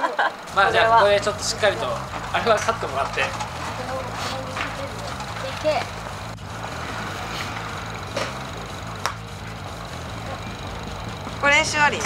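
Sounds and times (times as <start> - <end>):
low steady hum: 0.2 - 12.0
golf club striking ball: 8.0 - 9.5.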